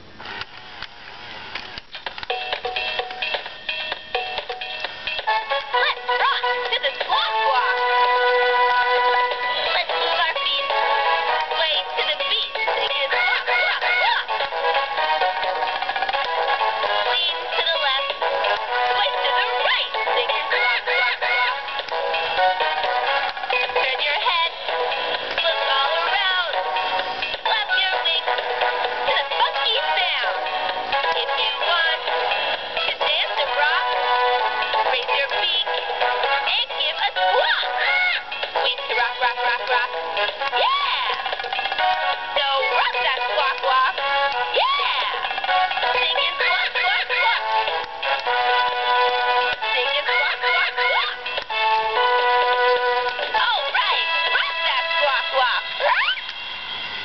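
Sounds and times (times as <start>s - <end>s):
synthetic parrot voice squawking: 49.9s - 51.2s.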